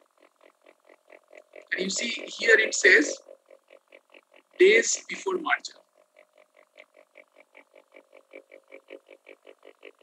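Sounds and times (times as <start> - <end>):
faint rapid even pulses: 0.0 - 10.0.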